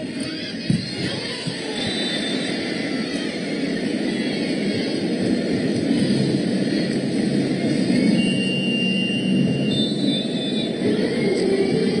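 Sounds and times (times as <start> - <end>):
crowd roar: 0.0 - 12.0
thin high whistle-like tone: 1.6 - 3.0, 8.0 - 11.4.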